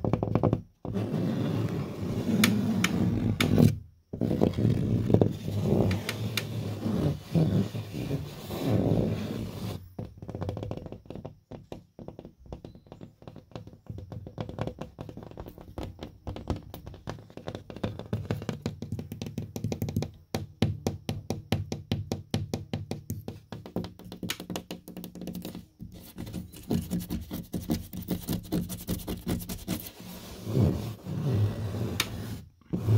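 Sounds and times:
fingers scratching paper board: 0:00.9 - 0:09.8, 0:24.9 - 0:32.9
fingertip tapping on board: 0:20.8 - 0:29.6.

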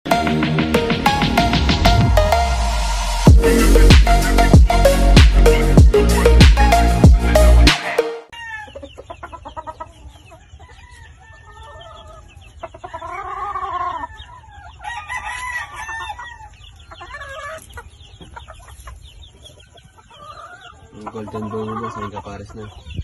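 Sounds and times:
chickens clucking: 0:05.4 - 0:23.0
roosters crowing: 0:05.6 - 0:23.0.

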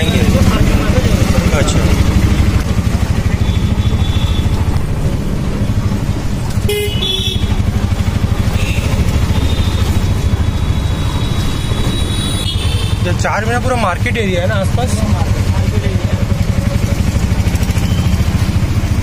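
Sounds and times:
auto-rickshaw engine running: 0:00.0 - 0:19.0
vehicle horns tooting: 0:03.2 - 0:04.7, 0:06.6 - 0:07.7, 0:08.3 - 0:13.2.

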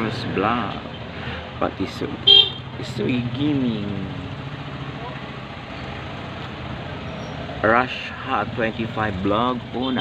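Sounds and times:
street noise: 0:00.0 - 0:10.0
vehicle engine rumbling: 0:00.0 - 0:10.0.

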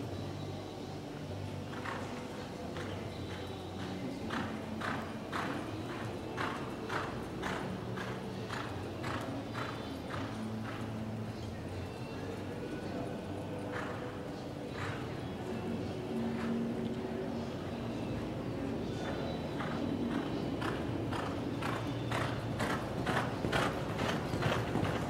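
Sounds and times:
faint voices: 0:00.0 - 0:25.0
horse hoofbeats on dirt: 0:02.8 - 0:12.0, 0:19.0 - 0:25.0.

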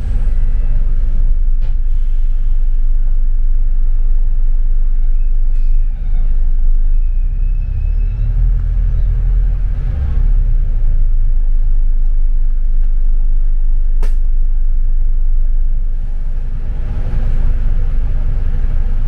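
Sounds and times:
bus engine and road rumble: 0:00.0 - 0:19.0.

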